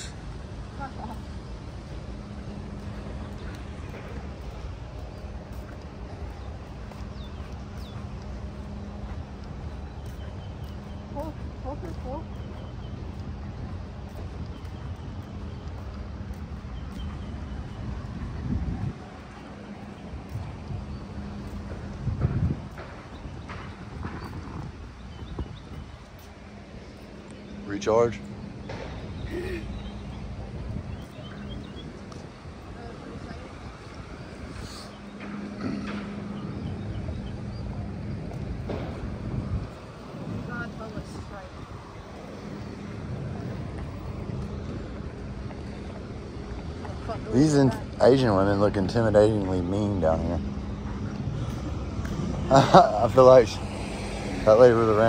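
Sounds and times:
wind rumble on microphone: 0.0s - 55.0s
sandal footsteps on paving and decking: 0.2s - 52.8s.

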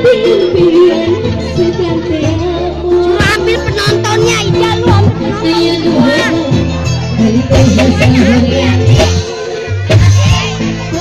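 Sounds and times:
loud live band music: 0.0s - 11.0s.

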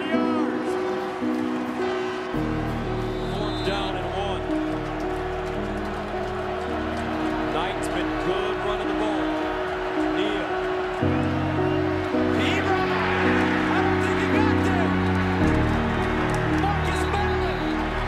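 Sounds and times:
sustained background music notes: 0.0s - 18.0s.

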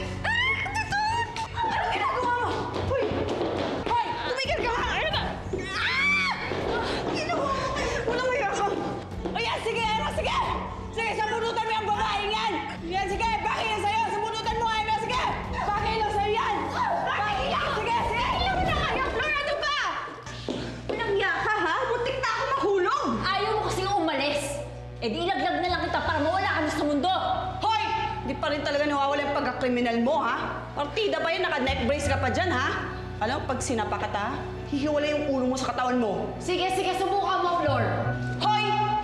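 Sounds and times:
women crying out and shouting: 0.0s - 3.2s, 3.9s - 20.2s
dramatic background music: 0.0s - 20.5s.

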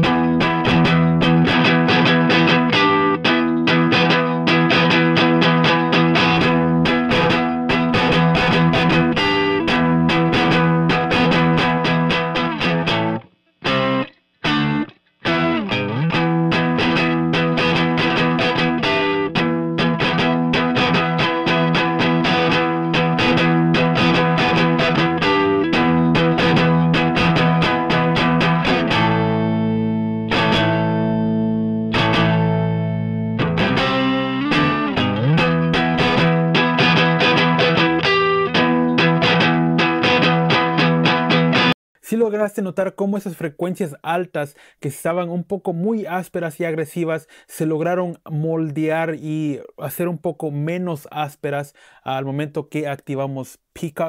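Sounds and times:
distorted electric guitar chords: 0.0s - 41.8s.

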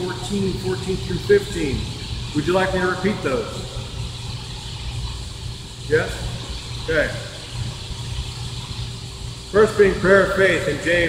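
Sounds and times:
man speaking: 0.0s - 3.6s, 9.6s - 11.0s
low room rumble: 0.0s - 11.0s.

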